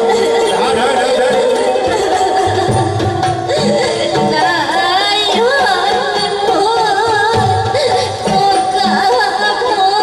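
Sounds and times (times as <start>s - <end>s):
folk band music: 0.0s - 10.0s.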